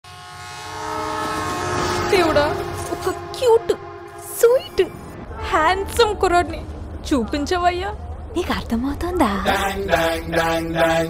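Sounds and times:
train horn blowing: 0:00.0 - 0:06.6.

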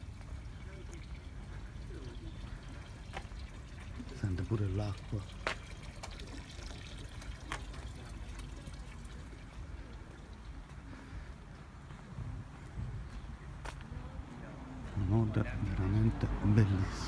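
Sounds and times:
trickle of running water: 0:00.0 - 0:10.8.

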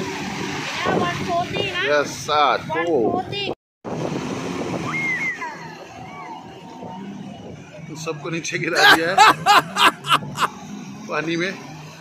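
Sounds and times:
jet ski engine running: 0:00.0 - 0:12.0.

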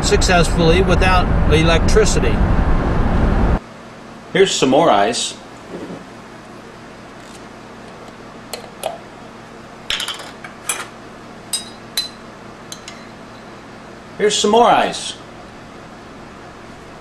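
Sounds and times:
clinks of metal and glass: 0:11.5 - 0:13.5.

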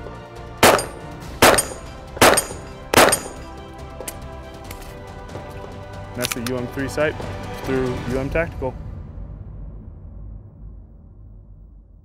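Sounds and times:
pistol shots: 0:00.6 - 0:03.5.

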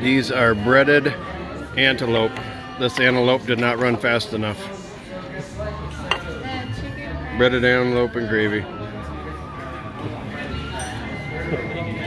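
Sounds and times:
murmur of voices: 0:00.0 - 0:12.0
tableware clink: 0:05.9 - 0:06.4, 0:10.7 - 0:11.2.

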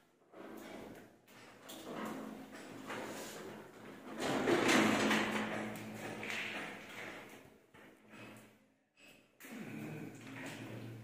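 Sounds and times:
plaster scraping and rubbing: 0:00.3 - 0:07.3.

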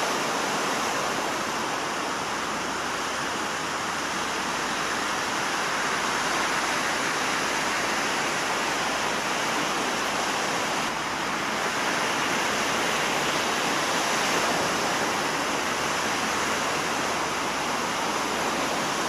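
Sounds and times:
ocean waves washing ashore: 0:00.0 - 0:19.0.

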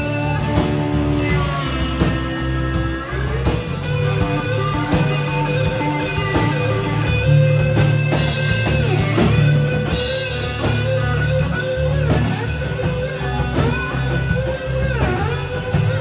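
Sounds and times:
bass line: 0:00.0 - 0:16.0
drum kit: 0:00.0 - 0:16.0
electric guitar lead: 0:00.0 - 0:16.0.

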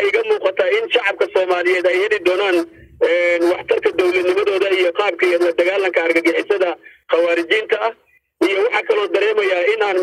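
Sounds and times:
man speaking over telephone: 0:00.0 - 0:10.0.

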